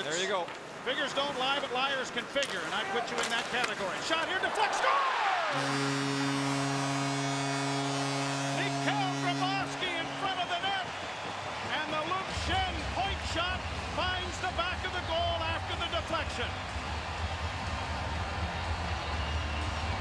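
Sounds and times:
crowd cheering: 2.8s - 20.0s
arena goal horn: 5.3s - 15.6s.

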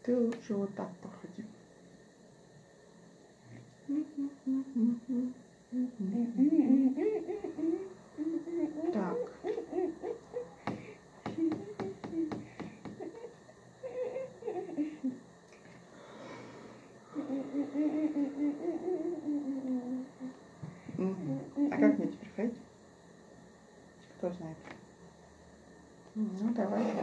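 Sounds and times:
person humming: 3.8s - 15.2s, 17.0s - 22.1s.

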